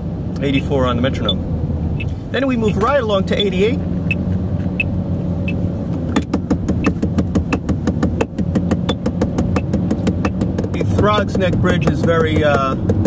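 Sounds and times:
car cabin road noise: 0.0s - 13.0s
drumstick tapping steering wheel: 2.0s - 13.0s.

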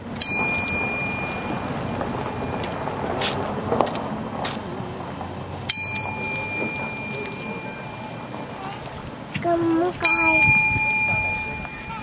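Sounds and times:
steady rushing noise: 0.0s - 12.0s
bell-like ring: 0.2s - 3.2s, 5.7s - 8.9s, 10.0s - 12.0s.

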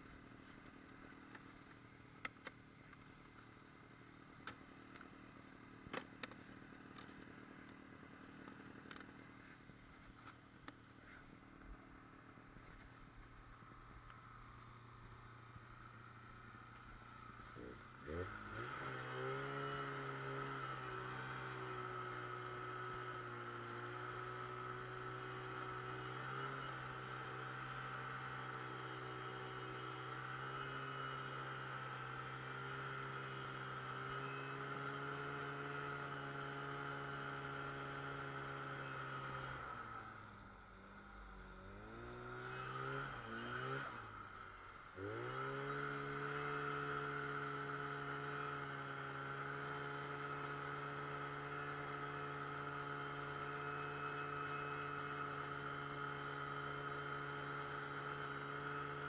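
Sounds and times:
snowmobile engine running: 0.0s - 59.0s.

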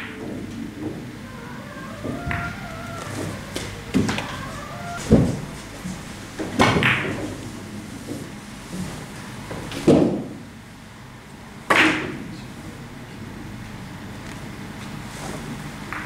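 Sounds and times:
billiard balls clicking: 0.0s - 7.4s.

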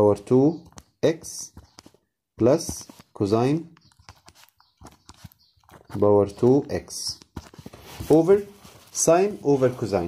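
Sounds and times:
stylus tapping and scratching: 0.2s - 10.0s.

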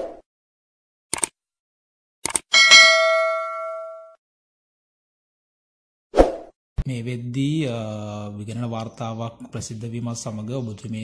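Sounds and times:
bright bell-like ding: 2.6s - 4.2s.

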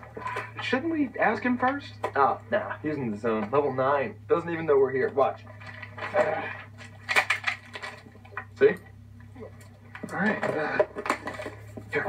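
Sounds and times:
objects clattering and knocking: 0.0s - 0.7s, 5.4s - 8.6s, 9.3s - 12.0s
steady low hum: 0.0s - 12.0s.

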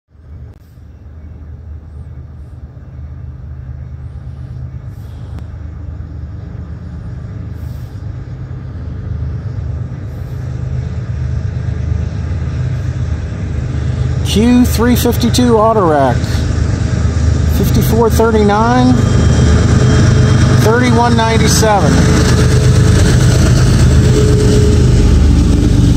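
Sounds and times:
diesel locomotive engine rumble: 0.1s - 25.9s.

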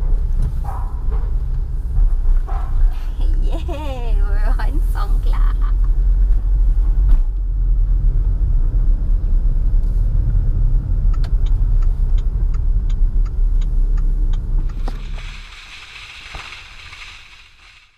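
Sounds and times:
car engine and tyre rumble: 0.0s - 17.9s
light regular ticking: 11.1s - 17.9s.

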